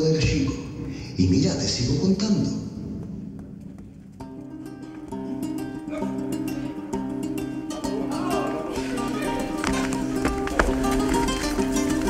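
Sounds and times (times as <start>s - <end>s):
guitars playing held notes: 4.2s - 12.0s.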